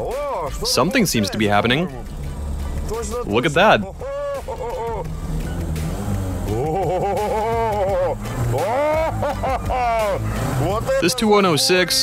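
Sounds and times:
car engine revving: 0:00.0 - 0:12.0
music: 0:00.0 - 0:12.0.

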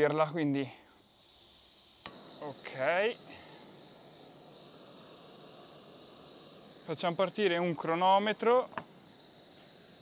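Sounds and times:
gas stove hissing: 0:00.0 - 0:10.0.

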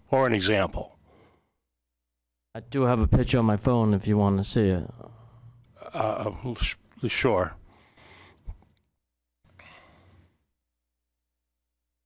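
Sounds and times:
faint breathing at microphone: 0:07.7 - 0:08.6.

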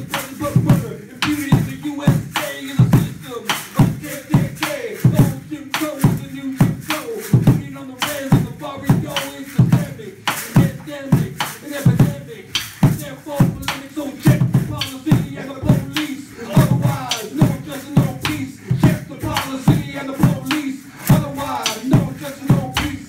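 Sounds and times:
hand rattle: 0:00.0 - 0:23.0.

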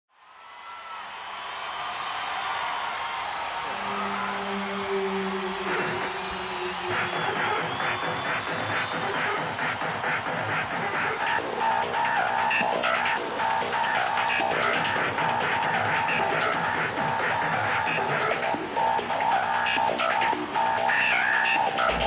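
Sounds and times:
arena crowd cheering: 0:00.1 - 0:22.0
rhythmic electronic music: 0:03.7 - 0:22.0.

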